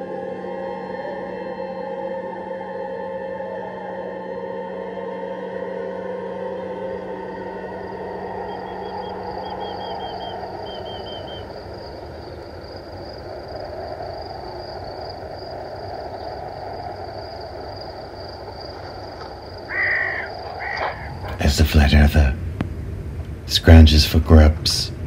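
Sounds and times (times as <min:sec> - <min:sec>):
low musical drone: 0:00.0 - 0:25.0
faint bird chirps: 0:08.2 - 0:12.7, 0:19.6 - 0:21.4
loud crow-like caw: 0:19.7 - 0:21.3.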